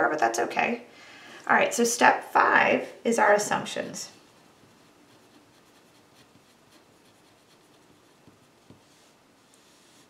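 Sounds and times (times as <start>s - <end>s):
pen scratching on paper: 4.3s - 10.0s.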